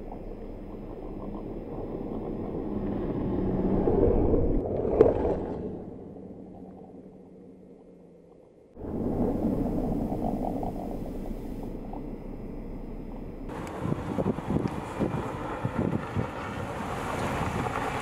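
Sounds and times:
road and wind noise: 0:00.0 - 0:18.0
wind buffeting microphone: 0:08.8 - 0:18.0.

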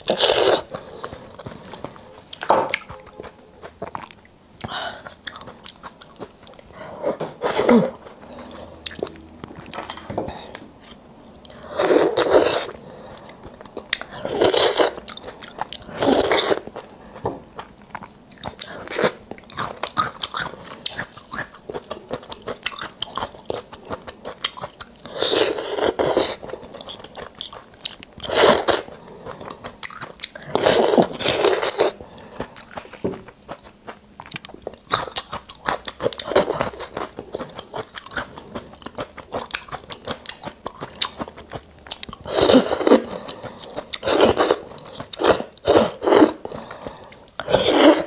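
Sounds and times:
wet chewing clicks: 0:32.4 - 0:42.4.

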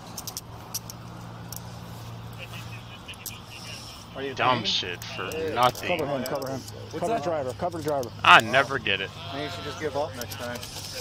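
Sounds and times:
faint distant voices: 0:02.3 - 0:11.0.

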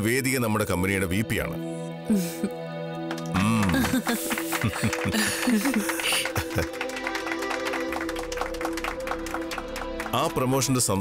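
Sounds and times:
background music: 0:00.0 - 0:11.0
people clapping: 0:03.0 - 0:11.0.

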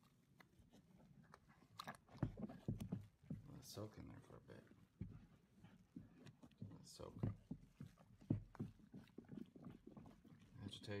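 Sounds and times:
wet squishing of scrubbed fabric: 0:04.8 - 0:11.0.

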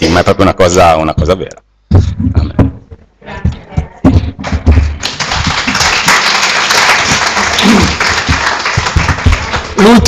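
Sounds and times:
low thumps: 0:01.1 - 0:05.5
congregation applauding: 0:05.0 - 0:10.0.

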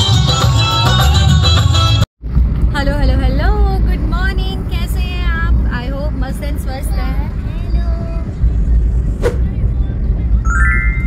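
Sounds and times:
car road rumble: 0:02.2 - 0:11.0.

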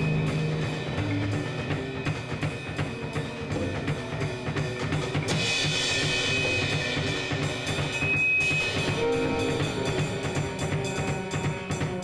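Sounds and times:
drum kit beat: 0:00.0 - 0:12.0.

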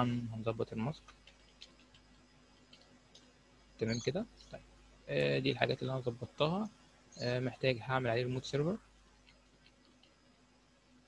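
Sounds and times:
keyboard keys typing: 0:01.0 - 0:02.9, 0:09.2 - 0:10.2.

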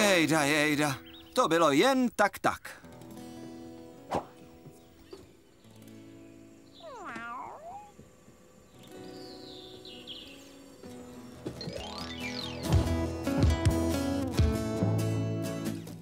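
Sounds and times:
cartoon cat meow: 0:06.8 - 0:07.9
soft background music: 0:08.4 - 0:16.0.

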